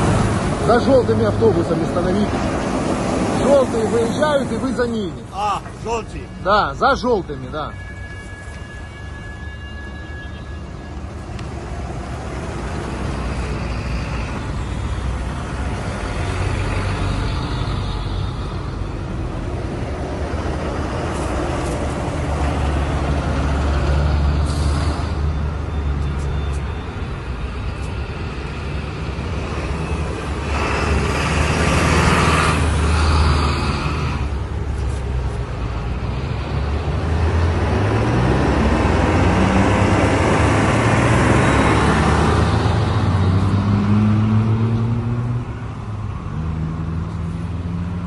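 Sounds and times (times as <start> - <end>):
bus passing close by: 0.0 - 6.1, 10.9 - 48.0
bus engines rumbling: 0.0 - 48.0.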